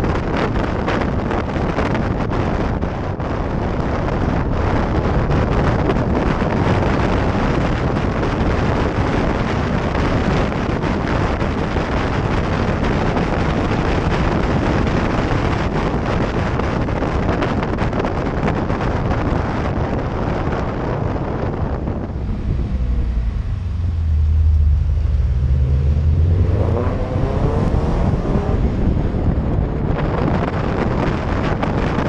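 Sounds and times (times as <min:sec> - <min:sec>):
car engine drone: 0:00.0 - 0:32.0
wind buffeting microphone: 0:00.0 - 0:32.0.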